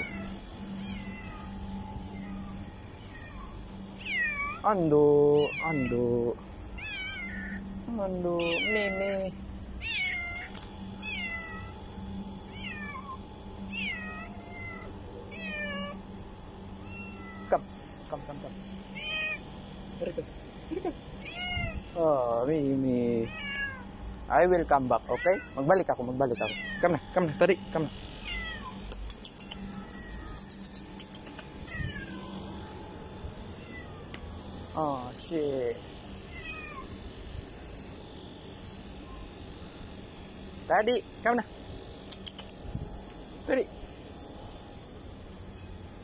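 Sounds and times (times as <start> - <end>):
cat meowing: 0.0 - 4.6, 5.4 - 6.0, 6.8 - 7.6, 8.4 - 9.2, 9.8 - 11.7, 12.5 - 16.0, 16.9 - 17.5, 19.0 - 19.4, 21.2 - 21.8, 23.3 - 23.9, 25.1 - 25.7, 26.4 - 26.9, 28.2 - 28.9, 29.6 - 30.7, 31.7 - 32.4, 33.6 - 34.2, 36.3 - 36.9
sharp click: 28.9 - 29.7, 42.1 - 42.6.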